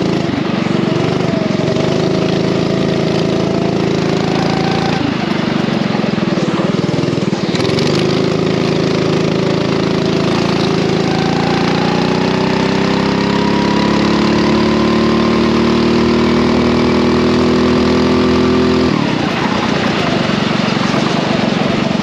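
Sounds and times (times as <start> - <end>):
kart engine accelerating: 0.0 - 22.0.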